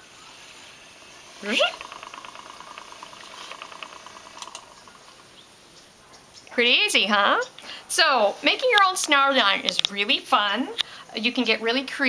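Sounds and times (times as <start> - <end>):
motor whine spinning up: 0.0 - 5.2
spinning wheel motor hum: 0.0 - 6.0
fast even ticking: 0.5 - 5.9.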